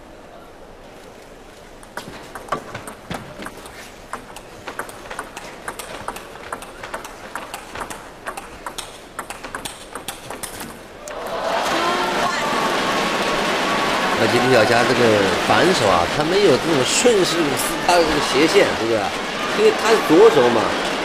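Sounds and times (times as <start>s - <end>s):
ping pong ball clicking off paddles: 1.8s - 10.9s
crowd cheering and shouting: 11.0s - 21.0s.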